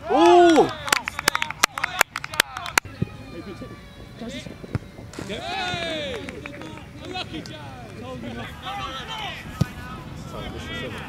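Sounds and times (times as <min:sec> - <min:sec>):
footballers shouting: 0:00.0 - 0:11.0.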